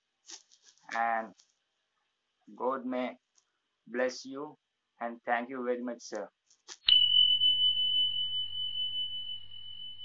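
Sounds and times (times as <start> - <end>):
high pure chime: 6.8 - 10.0.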